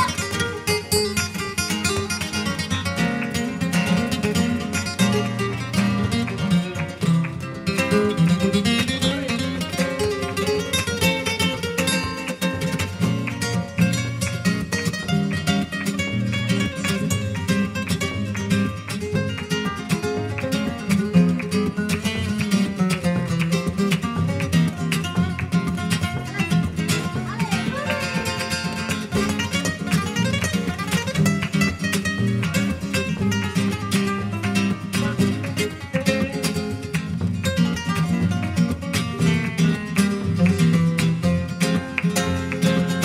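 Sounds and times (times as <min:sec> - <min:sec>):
flamenco acoustic guitars: 0:00.0 - 0:43.0.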